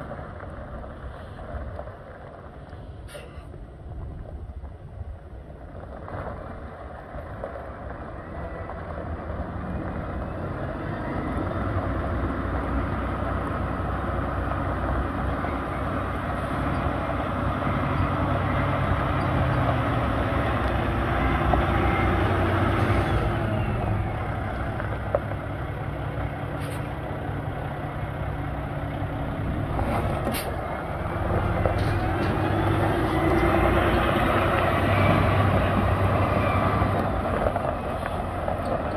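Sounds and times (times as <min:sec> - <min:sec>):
diesel truck engine running: 0:00.0 - 0:38.9.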